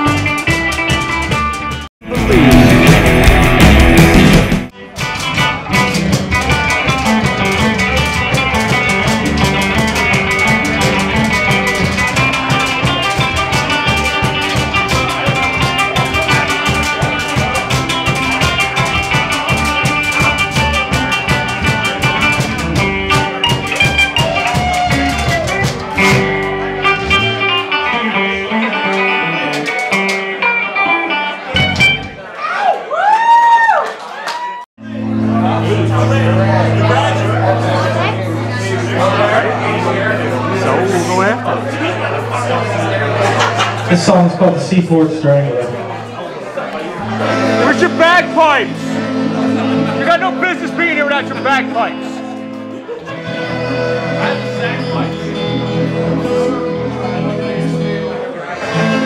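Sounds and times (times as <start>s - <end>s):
live band playing: 0.0s - 32.3s, 34.8s - 59.0s.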